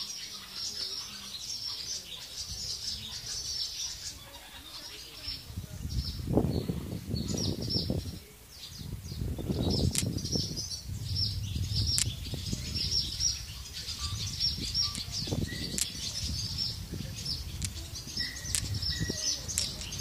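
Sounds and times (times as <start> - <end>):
swallows twittering: 0.0 - 20.0
sharp clicks: 9.9 - 10.2, 11.9 - 12.2, 14.9 - 16.0, 17.6 - 17.8, 18.4 - 18.9, 19.5 - 20.0.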